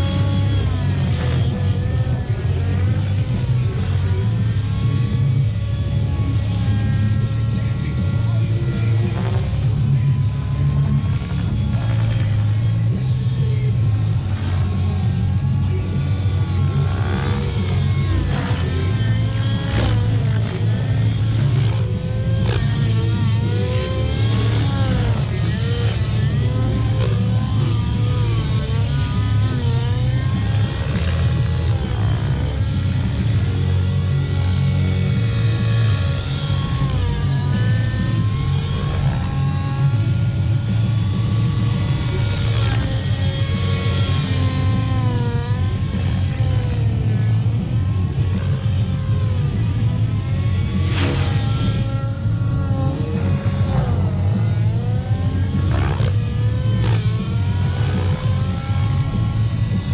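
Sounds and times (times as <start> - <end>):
model helicopter engine and rotor: 0.0 - 59.9
music playing: 0.0 - 59.9.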